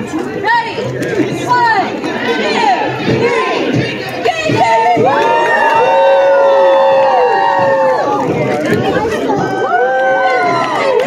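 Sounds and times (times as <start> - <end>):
children shouting and cheering: 2.2 - 11.0
many voices in long held cry: 4.5 - 11.0.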